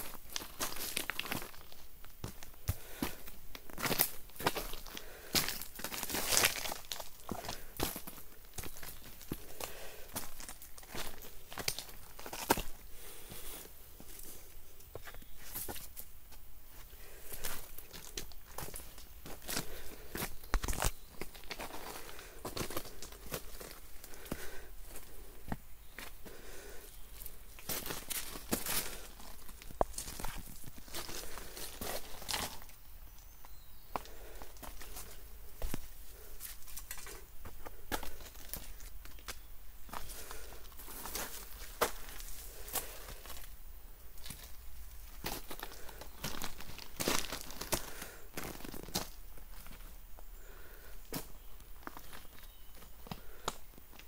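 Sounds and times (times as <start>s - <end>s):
footsteps crunching on pebbles and leaves: 0.0s - 54.0s.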